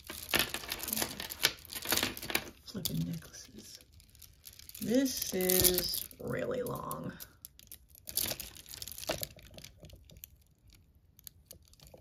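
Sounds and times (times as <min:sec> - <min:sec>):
beads clicking and clinking: 0:00.0 - 0:12.0.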